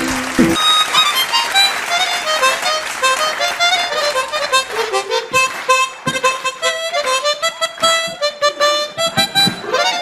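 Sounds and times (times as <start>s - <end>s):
harmonica solo: 0.0s - 10.0s.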